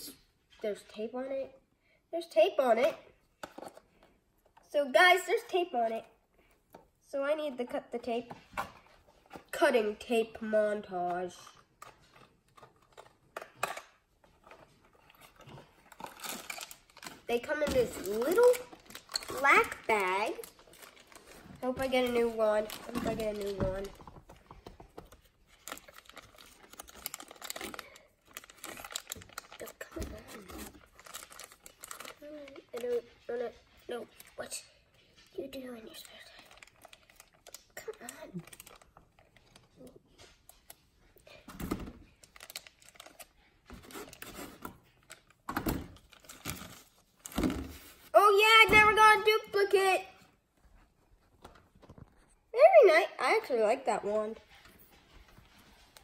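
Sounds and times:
plastic crinkling: 0:11.5 - 0:41.4, 0:42.1 - 0:48.1.

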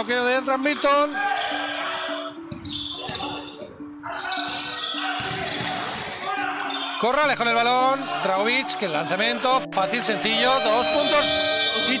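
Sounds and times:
indoor arena crowd noise: 0:00.0 - 0:09.4.

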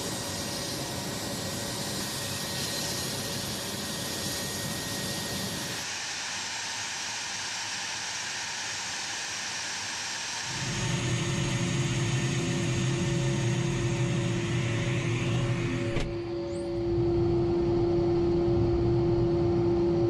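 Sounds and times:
jet engines whining: 0:00.0 - 0:20.0
low engine rumble with hum: 0:10.6 - 0:20.0.

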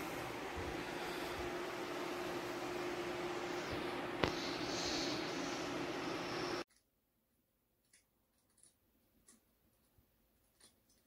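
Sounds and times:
room noise hiss: 0:00.0 - 0:06.6
faint steady hum: 0:00.0 - 0:06.7.

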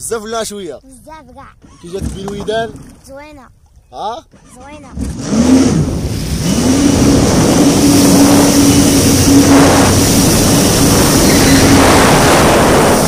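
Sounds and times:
jet ski engine revving: 0:01.6 - 0:03.0, 0:04.3 - 0:13.0
water and wind rushing: 0:05.0 - 0:13.0.

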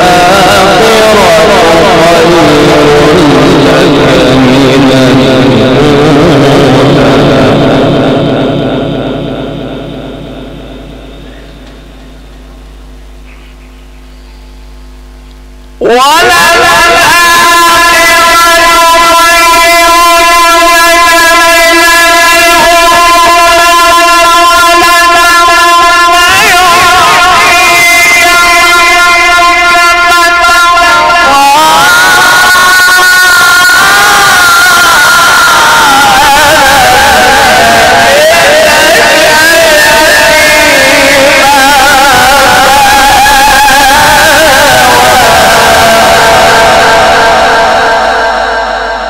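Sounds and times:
amplified recitation with echo: 0:00.0 - 0:49.0
man chanting through microphone: 0:00.0 - 0:49.0
sound system hum: 0:00.0 - 0:49.0.

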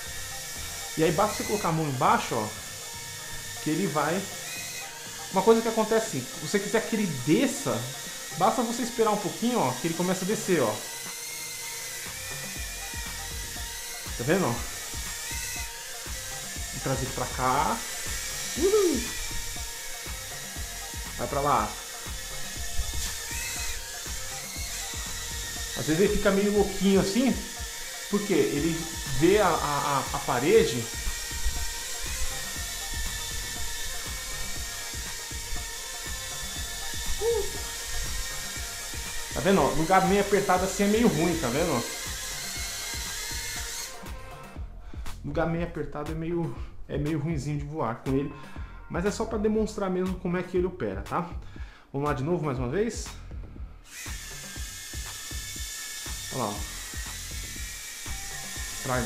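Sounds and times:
quadcopter propellers buzzing: 0:00.0 - 0:45.2, 0:53.8 - 0:59.0.

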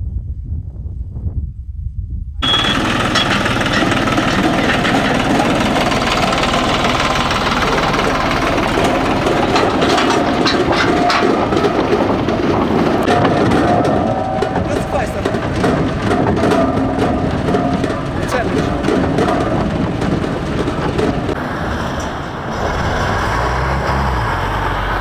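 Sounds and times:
trailer and metal cans rattling: 0:02.4 - 0:21.4
tractor engine droning: 0:02.4 - 0:25.0.

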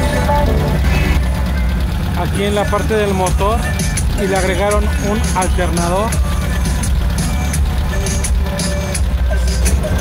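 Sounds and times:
loud bass-heavy music: 0:00.0 - 0:10.0.

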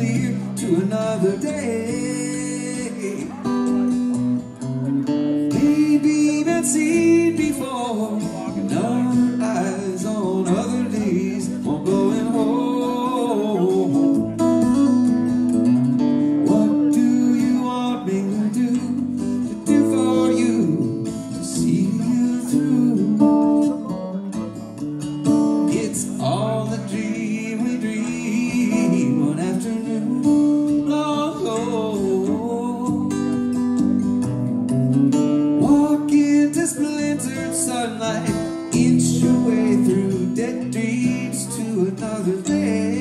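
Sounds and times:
solo electric guitar: 0:00.0 - 0:43.0.

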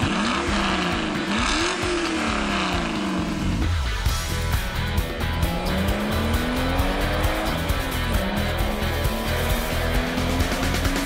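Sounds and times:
music: 0:00.0 - 0:11.0
racing car engine revving: 0:00.0 - 0:11.0.

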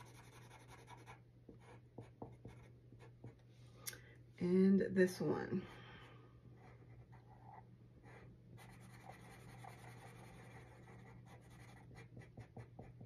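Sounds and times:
marker scratching on paper: 0:00.0 - 0:03.4, 0:06.6 - 0:13.0.

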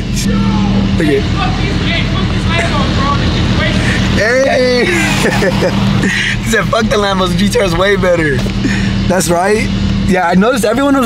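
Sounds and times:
car engine low rumble: 0:00.0 - 0:11.0.

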